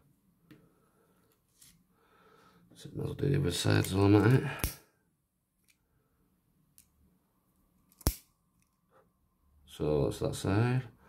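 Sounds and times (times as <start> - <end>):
wire cutters snipping: 7.9 - 8.2.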